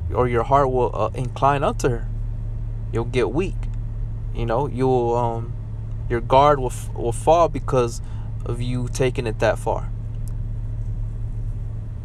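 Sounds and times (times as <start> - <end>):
low mechanical rumble: 0.0 - 12.0.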